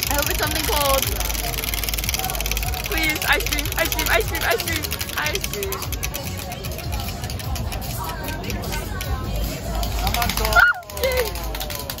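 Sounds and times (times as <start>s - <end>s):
crowd chatter: 0.0s - 12.0s
prize wheel pointer ticking: 0.0s - 12.0s.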